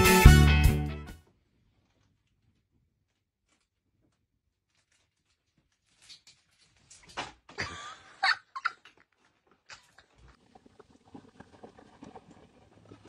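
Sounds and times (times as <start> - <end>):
small objects knocking and rattling: 3.4 - 7.6.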